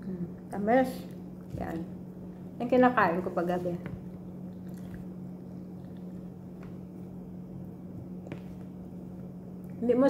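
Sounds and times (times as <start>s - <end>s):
steady low hum: 0.0s - 10.0s
mouth chewing wetly: 4.4s - 6.7s.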